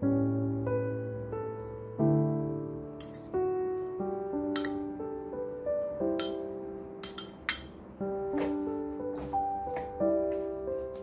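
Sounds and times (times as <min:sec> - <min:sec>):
soft piano music: 0:00.0 - 0:11.0
metal spoon clinking ceramic bowl: 0:03.0 - 0:03.3, 0:04.6 - 0:04.8, 0:06.2 - 0:06.4, 0:07.0 - 0:07.8.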